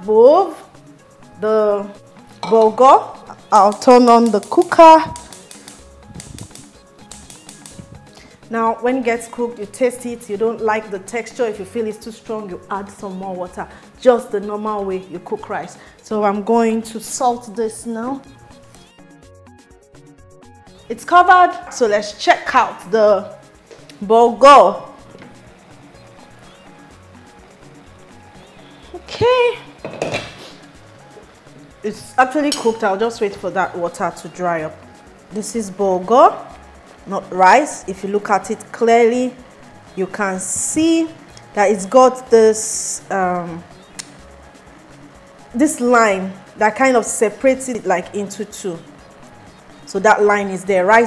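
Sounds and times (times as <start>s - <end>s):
background music: 0.0s - 51.0s
metal pot and lid clattering: 2.3s - 2.8s, 29.8s - 30.4s, 32.4s - 33.0s
gas igniter clicking: 3.5s - 8.2s, 43.9s - 44.2s.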